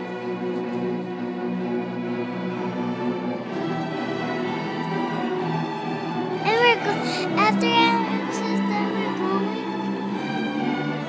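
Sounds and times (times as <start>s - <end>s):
orchestra sustained chords: 0.0s - 11.0s.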